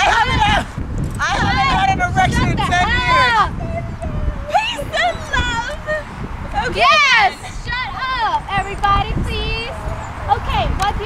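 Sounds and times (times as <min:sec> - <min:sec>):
wind rumbling on microphone: 0:00.0 - 0:11.0
young voices squealing: 0:02.5 - 0:08.4.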